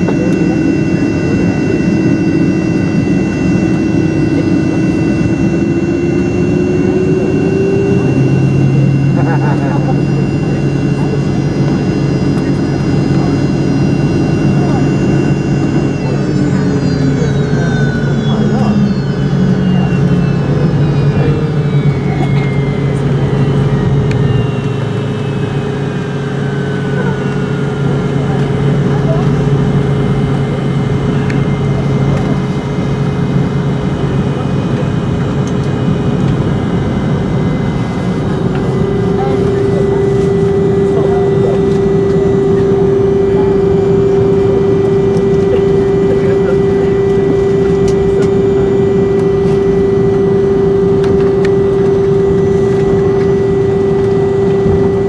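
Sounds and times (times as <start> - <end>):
jet engines humming and whining: 0.0 - 55.0
rising low tone: 0.0 - 55.0.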